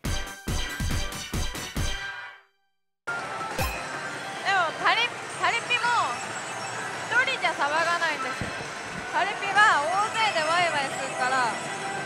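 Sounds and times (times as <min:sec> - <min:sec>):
slot parlour din: 0:03.3 - 0:11.7.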